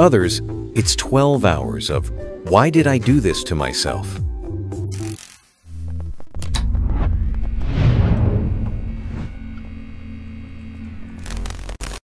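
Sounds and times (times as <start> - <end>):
low sustained electronic tones: 5.7 - 12.0
deep bass hit with swish: 6.6 - 10.1.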